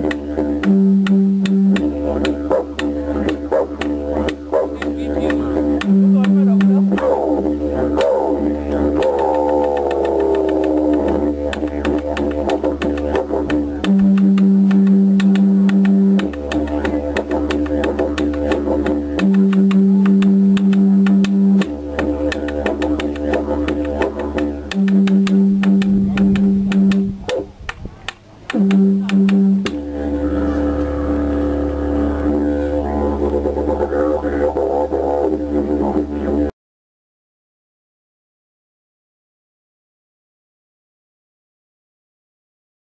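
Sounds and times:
didgeridoo drone: 0.0 - 36.6
sharp clicks beat: 9.0 - 29.8.

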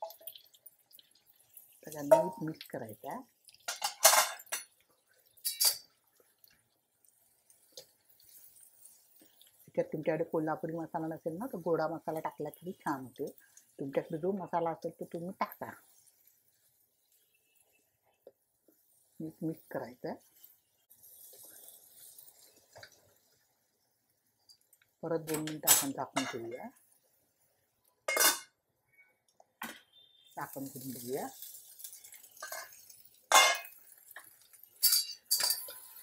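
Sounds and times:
spatula stirring with squishing: 0.0 - 9.8, 12.4 - 14.2, 15.0 - 25.0, 30.0 - 36.0
sizzling in hot oil: 0.0 - 36.0.

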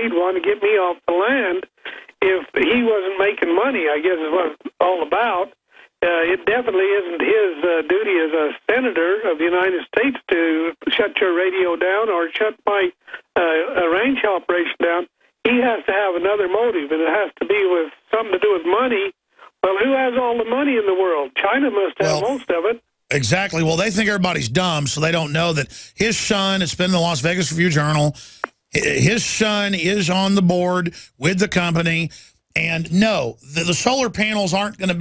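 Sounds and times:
person talking over telephone line: 0.0 - 35.0.

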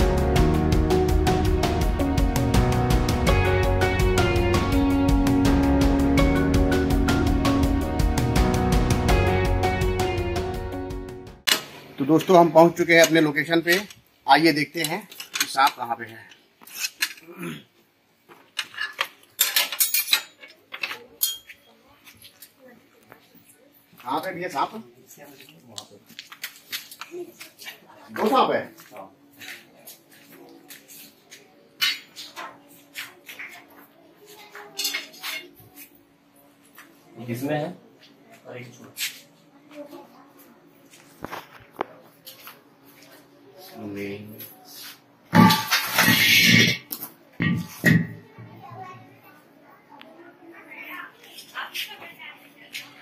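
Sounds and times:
metal stick clinking and clicking: 18.6 - 21.6
metal cylinder scraping on concrete: 45.4 - 46.8.

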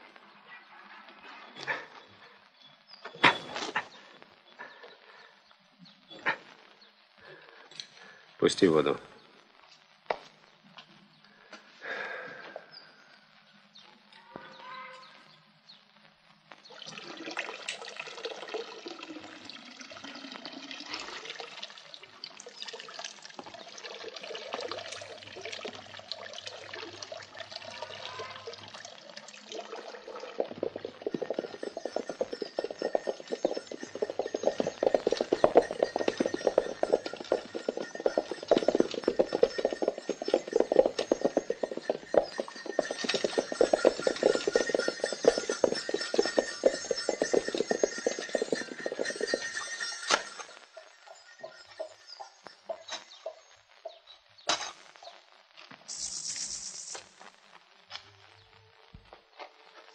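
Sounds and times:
water running from spout: 16.7 - 53.4, 55.9 - 57.0.

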